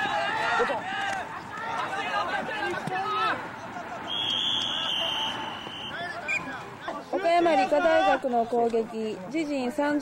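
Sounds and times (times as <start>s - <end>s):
referee's whistle blast: 4.1s - 6.5s.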